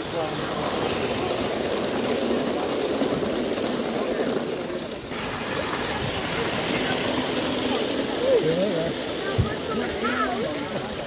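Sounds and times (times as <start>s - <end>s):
chatter of onlookers: 0.0s - 11.0s
model steam train rattling on track: 0.0s - 11.0s.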